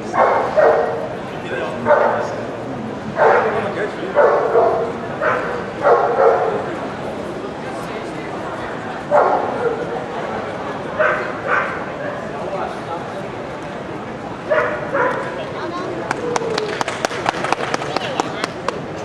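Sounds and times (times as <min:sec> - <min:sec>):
dog barking: 0:00.1 - 0:01.1, 0:01.8 - 0:02.4, 0:03.2 - 0:03.6, 0:04.2 - 0:06.7, 0:09.1 - 0:09.9, 0:11.0 - 0:11.9, 0:14.5 - 0:15.4.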